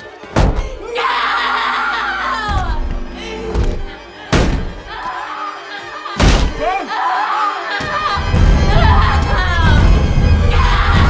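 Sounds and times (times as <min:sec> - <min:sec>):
tense horror music: 0:00.0 - 0:11.0
woman screaming: 0:00.7 - 0:02.9, 0:06.6 - 0:09.9, 0:10.5 - 0:11.0
heavy booming impacts: 0:02.3 - 0:04.9.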